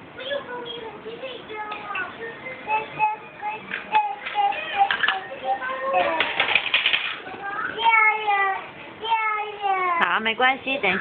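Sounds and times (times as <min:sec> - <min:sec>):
toddler singing: 0:00.1 - 0:06.5, 0:07.3 - 0:10.0
plastic toy clicks and rattles: 0:06.1 - 0:07.2.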